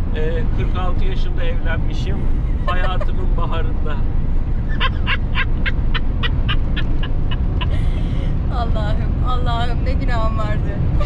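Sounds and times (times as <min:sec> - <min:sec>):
diesel engine droning: 0:00.0 - 0:11.0
road noise: 0:00.0 - 0:11.0
person laughing: 0:02.6 - 0:03.6, 0:04.7 - 0:08.3.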